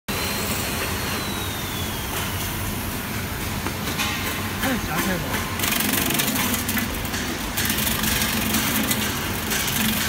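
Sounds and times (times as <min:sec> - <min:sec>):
bowl cutter running: 0:04.6 - 0:10.0.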